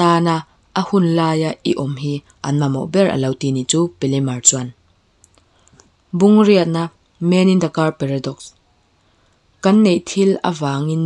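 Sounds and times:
narrator speaking: 0:00.0 - 0:04.8, 0:06.2 - 0:08.5, 0:09.6 - 0:11.0
faint clicks: 0:05.2 - 0:06.0.

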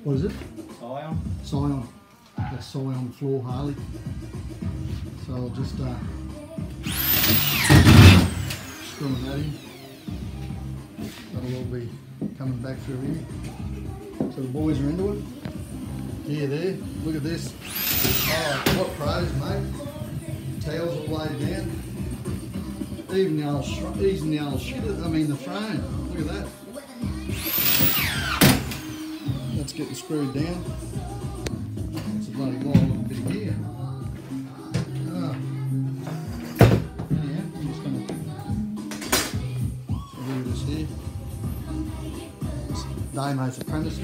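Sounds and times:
electric screw gun whining: 0:06.8 - 0:10.6, 0:17.4 - 0:19.6, 0:27.2 - 0:29.8.

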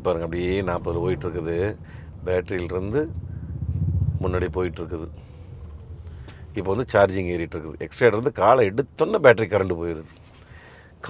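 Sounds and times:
man speaking: 0:00.0 - 0:03.1, 0:04.2 - 0:05.2, 0:06.5 - 0:10.1
road and tyre noise in car: 0:00.0 - 0:11.0.

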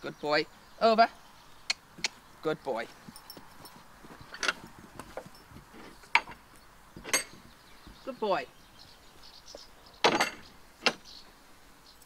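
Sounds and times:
metal gate latch clanking: 0:07.0 - 0:07.4, 0:10.0 - 0:11.0.

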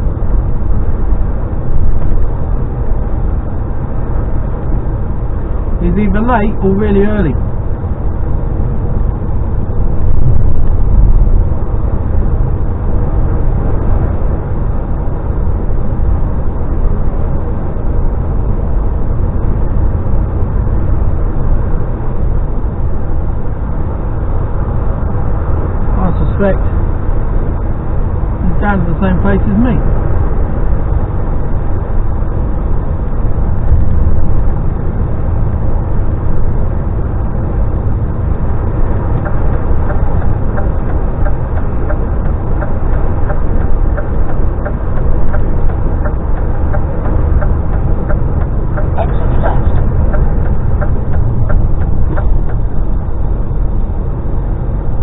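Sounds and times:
lorry engine and road drone: 0:00.0 - 0:55.0.

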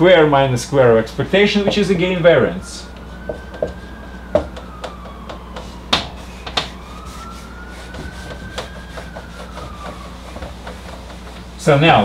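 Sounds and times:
faint distant siren wailing: 0:00.0 - 0:12.0
marker on whiteboard: 0:03.0 - 0:11.5.

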